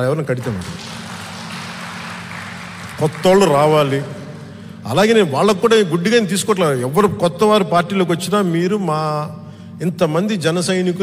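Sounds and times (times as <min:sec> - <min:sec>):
low steady hum: 0:00.0 - 0:11.0
audience applauding: 0:00.3 - 0:05.2.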